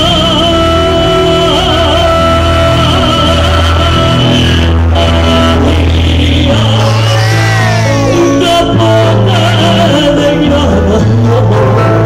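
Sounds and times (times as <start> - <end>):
held keyboard chords: 0.0 - 12.0
steady bass line: 0.0 - 12.0.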